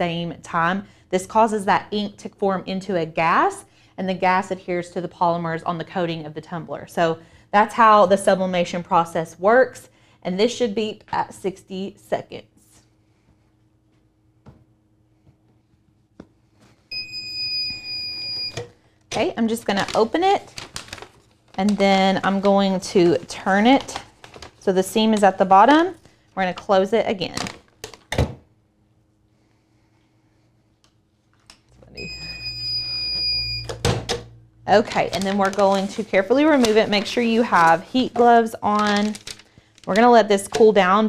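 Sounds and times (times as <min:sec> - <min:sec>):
low hum: 0:28.6 - 0:38.2
long high-pitched timer beep: 0:32.0 - 0:33.7.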